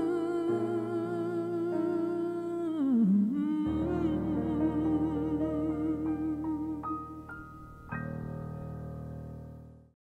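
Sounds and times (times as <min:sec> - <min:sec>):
man singing long note with vibrato: 0:00.0 - 0:07.1
sustained backing chord: 0:03.6 - 0:09.9.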